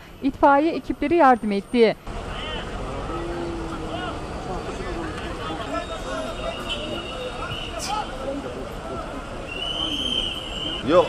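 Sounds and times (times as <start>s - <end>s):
distant crowd voices: 0.2s - 11.0s.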